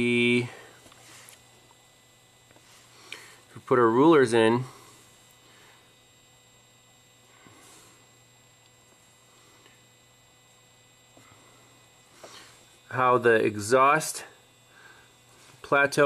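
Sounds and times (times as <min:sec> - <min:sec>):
faint low hum: 0:00.0 - 0:16.0.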